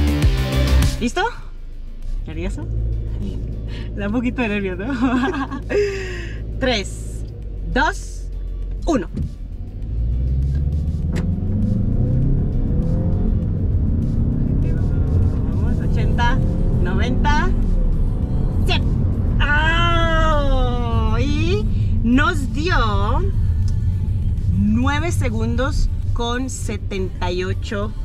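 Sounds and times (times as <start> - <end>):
car engine accelerating: 0.0 - 28.0.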